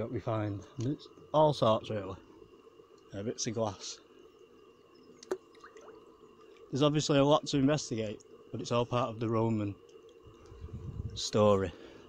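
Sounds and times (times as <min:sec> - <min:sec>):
stream water trickling: 0:00.0 - 0:12.0.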